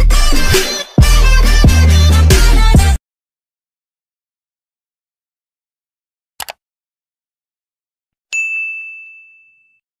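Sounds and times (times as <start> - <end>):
bright bell ding: 8.3 - 9.8.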